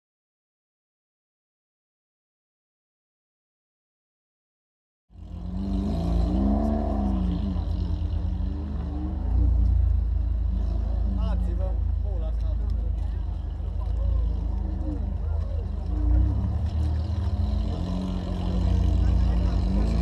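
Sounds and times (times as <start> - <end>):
car engine idling: 7.0 - 20.0
crowd chatter: 10.1 - 20.0.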